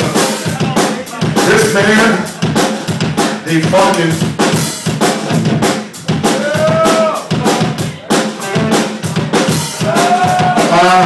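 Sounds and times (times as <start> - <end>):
rock drum kit playing: 0.0 - 11.0
person shouting: 6.3 - 7.3.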